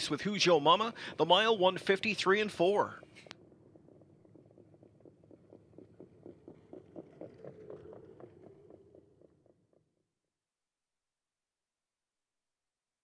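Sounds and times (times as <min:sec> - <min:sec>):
low steady hum: 0:00.0 - 0:09.9
horse hoofbeats on dirt: 0:01.6 - 0:09.6.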